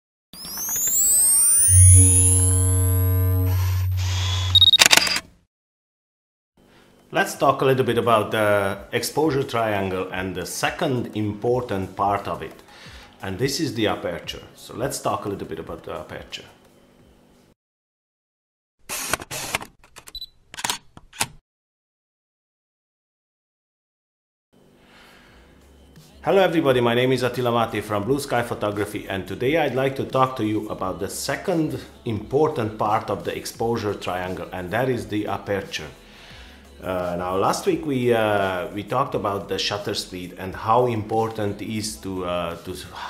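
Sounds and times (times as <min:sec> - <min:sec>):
rising sweeping tones: 0:00.4 - 0:04.5
short high beep: 0:00.4 - 0:05.2
camera shutter clicks: 0:04.2 - 0:05.3, 0:18.9 - 0:19.7.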